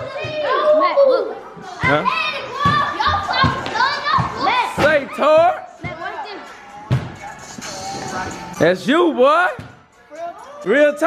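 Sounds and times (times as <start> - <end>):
children talking and shouting: 0.0 - 11.0.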